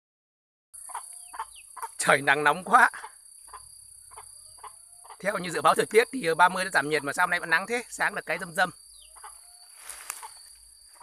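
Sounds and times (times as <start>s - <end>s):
chicken clucking: 0.8s - 2.0s, 2.9s - 5.6s, 8.3s - 11.0s.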